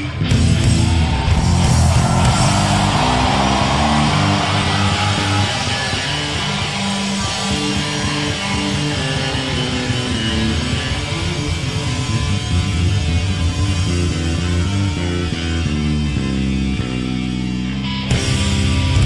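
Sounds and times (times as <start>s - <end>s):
rock band playing: 0.0s - 19.0s.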